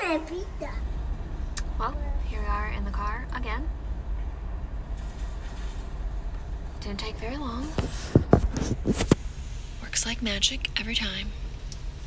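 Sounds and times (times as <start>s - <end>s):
car road and engine noise: 0.0s - 12.0s.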